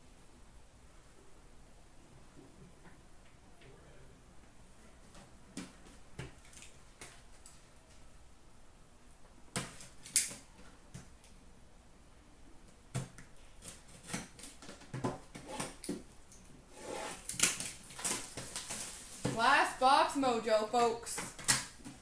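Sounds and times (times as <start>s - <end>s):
rustling of card packaging: 17.1s - 19.6s.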